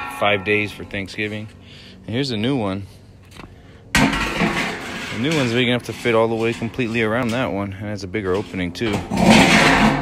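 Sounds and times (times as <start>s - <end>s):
metal drum clanking and ringing: 0.0s - 1.3s, 3.9s - 10.0s.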